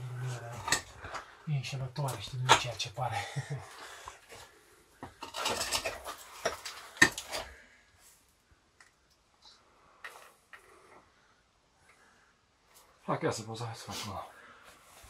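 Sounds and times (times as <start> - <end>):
faint clicks and scrapes: 3.9 - 11.1.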